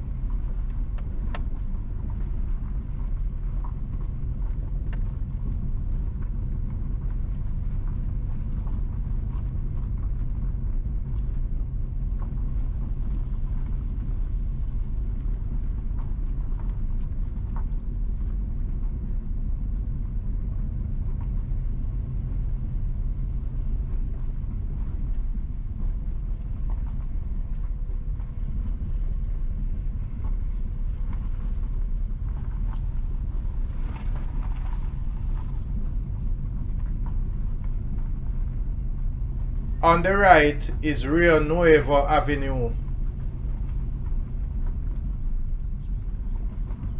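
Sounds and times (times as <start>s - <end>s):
car rumbling on rough road: 0.0s - 39.8s
light ticks: 0.6s - 1.6s.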